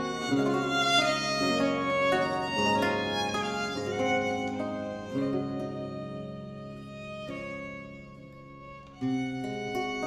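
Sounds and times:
plucked lute notes: 0.0s - 10.0s
violin playing bowed melody: 0.0s - 10.0s.

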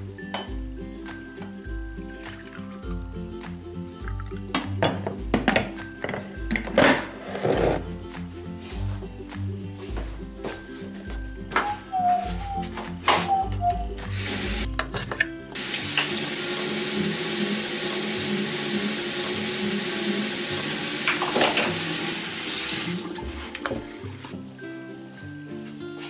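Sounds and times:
tap water running into sink: 14.1s - 14.7s, 15.6s - 24.3s.

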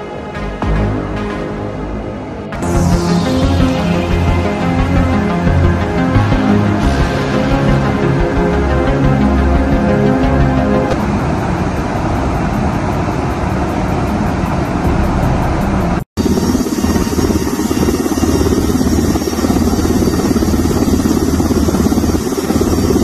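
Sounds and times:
aircraft engine and wind rush: 0.0s - 23.0s.

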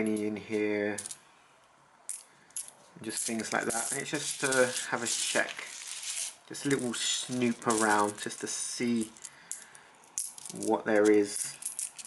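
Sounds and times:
coins clinking in a hand: 2.1s - 12.0s.

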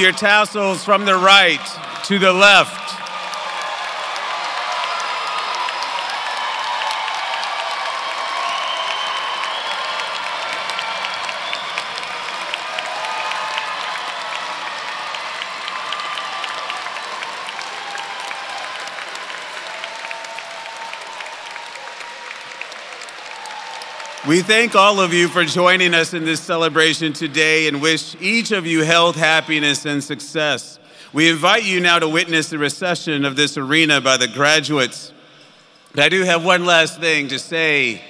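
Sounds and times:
crowd applauding: 0.0s - 28.0s
whoops and shouts: 1.4s - 24.5s.

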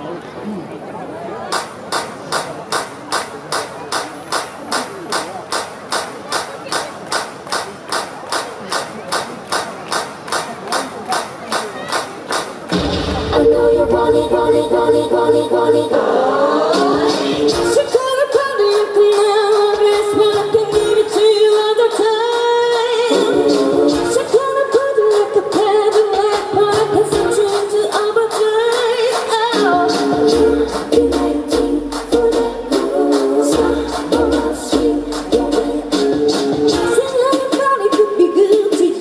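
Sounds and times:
faint crowd chatter: 0.0s - 39.0s
clap-like percussive beat: 1.5s - 15.2s, 16.8s - 38.9s
women singing pop song: 13.1s - 39.0s.

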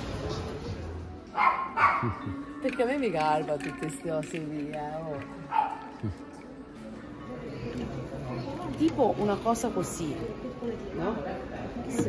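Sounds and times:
dog barking: 1.4s - 2.2s, 5.5s - 5.9s.

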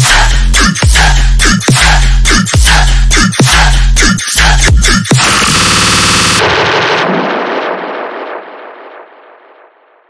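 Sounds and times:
electronic music: 0.0s - 9.7s
explosion-like crash: 6.4s - 10.0s.

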